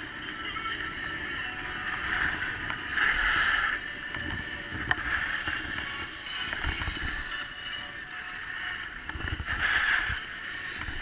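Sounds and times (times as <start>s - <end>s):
skis scraping over snow: 0.0s - 11.0s.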